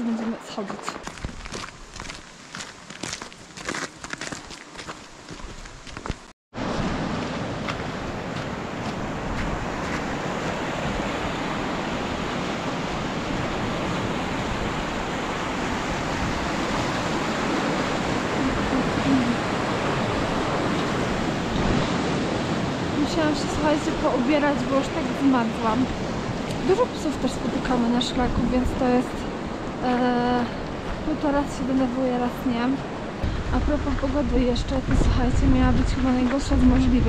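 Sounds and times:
mountain stream rushing: 0.0 - 35.1
footsteps on snow and ice: 0.6 - 6.3, 7.2 - 10.2.

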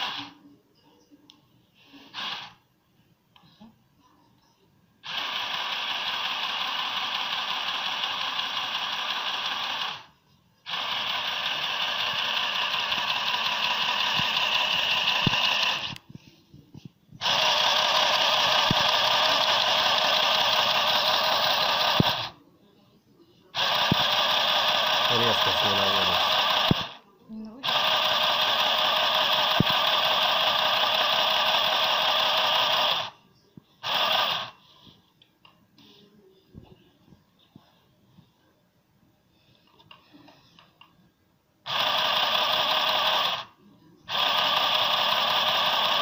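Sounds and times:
sewing machine stitching fabric: 5.0 - 10.1, 10.7 - 16.0, 17.2 - 22.3, 23.6 - 27.0, 27.6 - 33.2, 33.8 - 34.6, 41.7 - 43.5, 44.1 - 46.0.

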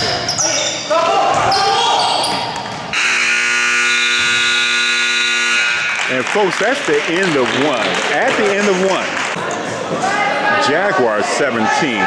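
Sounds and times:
scoreboard horn blare: 2.9 - 6.2.

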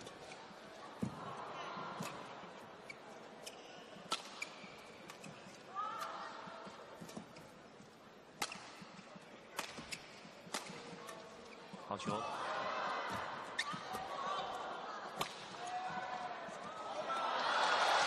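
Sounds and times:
rackets striking shuttlecock: 3.4 - 5.3, 8.4 - 9.0, 9.6 - 11.1.

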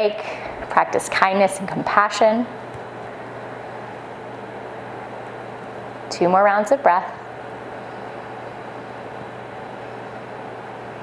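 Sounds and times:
low hum with hiss: 0.0 - 11.0.

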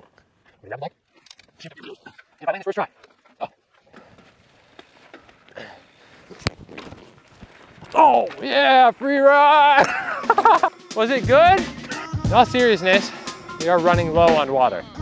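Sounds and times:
mountain bike rolling on dirt: 0.0 - 9.8.

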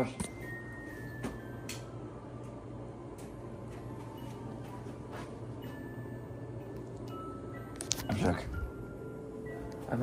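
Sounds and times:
sustained chiming notes: 4.2 - 10.0.

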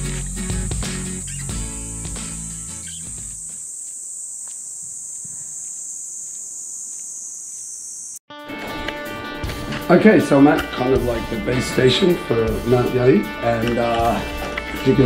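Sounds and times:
guitar music: 0.0 - 3.4, 8.3 - 15.0
high-pitched insect chorus: 0.0 - 8.2.

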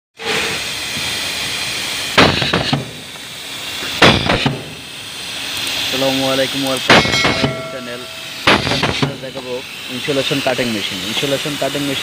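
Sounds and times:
air exhaust blast: 0.2 - 12.0
compressed air hissing: 0.2 - 12.0
sharp machine bangs: 2.1 - 3.1, 3.9 - 5.0, 5.9 - 9.6.

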